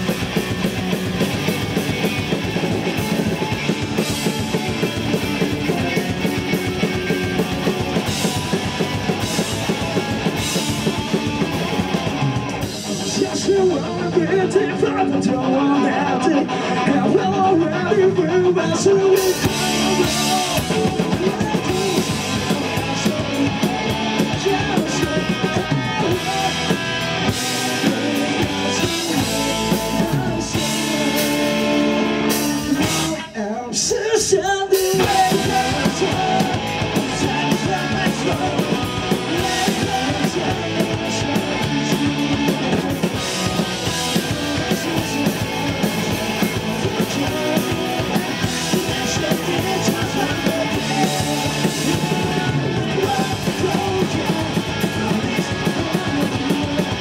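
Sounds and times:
live rock band: 0:00.0 - 0:57.0.

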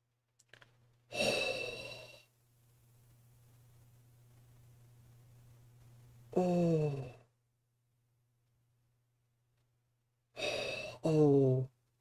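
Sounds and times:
faint low hum: 0:00.0 - 0:12.0
man saying oh: 0:11.0 - 0:11.7.

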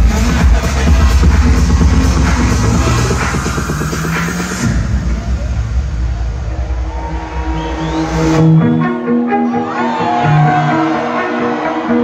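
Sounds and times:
pounding kick-drum beat: 0:00.0 - 0:08.5
electronic dance music: 0:00.0 - 0:12.0
sustained synth chords: 0:00.8 - 0:07.0.

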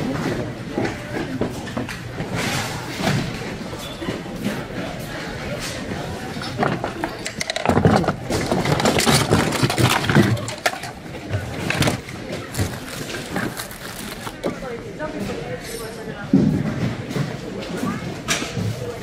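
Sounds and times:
plastic toys clattering: 0:05.6 - 0:14.8.

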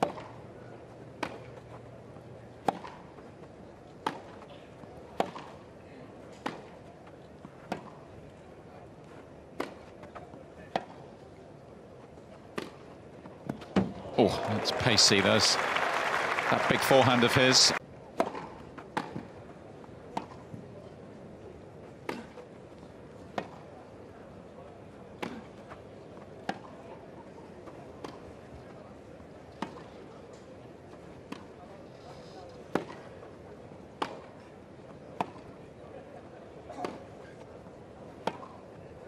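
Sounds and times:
low crowd murmur: 0:00.0 - 0:39.0
tennis racquets hitting ball: 0:02.6 - 0:03.2, 0:04.0 - 0:04.4, 0:05.1 - 0:05.6, 0:09.6 - 0:10.1, 0:12.5 - 0:13.9, 0:22.0 - 0:22.4, 0:33.9 - 0:34.4, 0:38.2 - 0:38.6.

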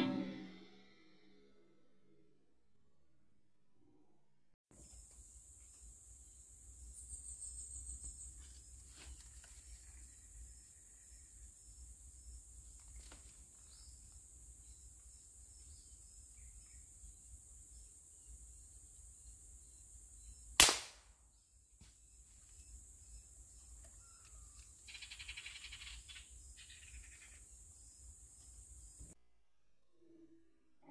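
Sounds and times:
high insect hiss: 0:04.8 - 0:29.2
air rifle shot: 0:20.6 - 0:21.1.

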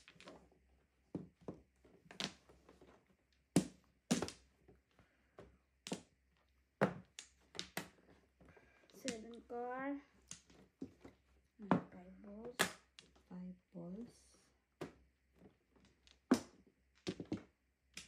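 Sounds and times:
mahjong tiles clacking: 0:08.9 - 0:13.2.

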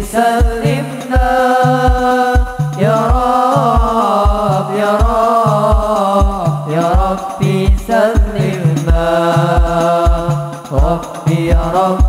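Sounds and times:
deep drum beat: 0:00.0 - 0:12.0
frame drums: 0:00.0 - 0:12.0
man singing: 0:00.0 - 0:12.0.

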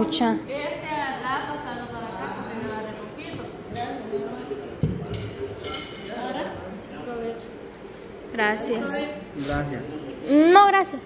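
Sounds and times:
table chatter: 0:00.0 - 0:09.2
dishes and cutlery clinking: 0:04.8 - 0:06.5.

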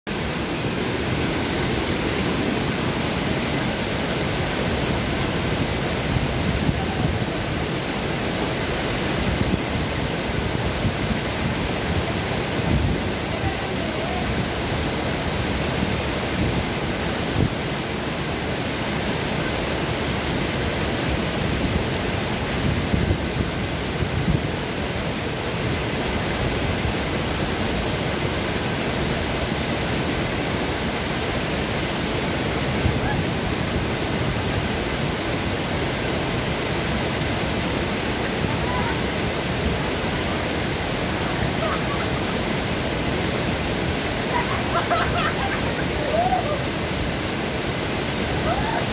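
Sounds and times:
waterfall rushing into pool: 0:00.1 - 0:48.9.

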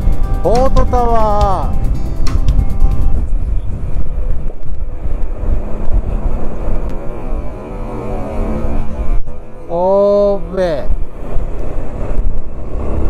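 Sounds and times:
music: 0:00.0 - 0:03.4
motorcycle engine: 0:00.0 - 0:13.0
road noise: 0:00.0 - 0:13.0
wind buffeting microphone: 0:00.0 - 0:13.0.

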